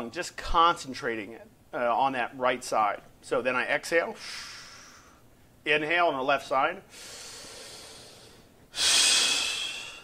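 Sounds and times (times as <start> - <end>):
man breathing deeply: 4.2 - 5.3, 6.9 - 10.0.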